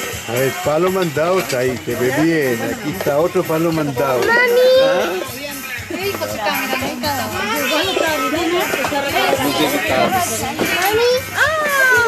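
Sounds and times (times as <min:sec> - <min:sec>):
adults talking: 0:00.0 - 0:12.0
children's voices: 0:04.2 - 0:05.2, 0:05.9 - 0:12.0.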